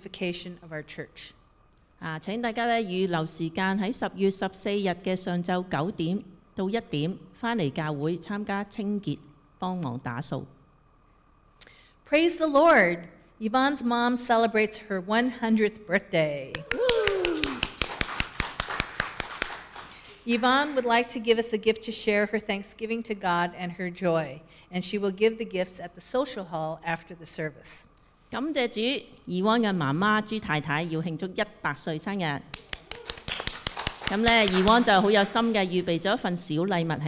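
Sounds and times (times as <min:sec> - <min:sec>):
hands clapping steadily: 0:16.5 - 0:20.2, 0:32.5 - 0:35.0
short falling vocal cheer: 0:16.6 - 0:17.7, 0:32.8 - 0:33.4
faint applause: 0:16.6 - 0:20.2, 0:32.7 - 0:34.8
person speaking: 0:34.0 - 0:37.0.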